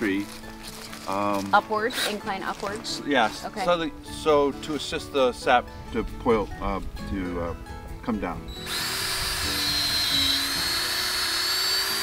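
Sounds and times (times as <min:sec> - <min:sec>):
cordless drill whine: 0:08.5 - 0:12.0
drill bit scraping wood: 0:08.5 - 0:12.0.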